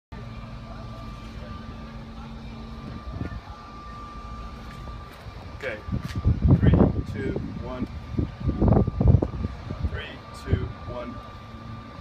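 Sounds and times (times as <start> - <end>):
low mechanical hum: 0.1 - 12.0
thin high whine: 0.1 - 12.0.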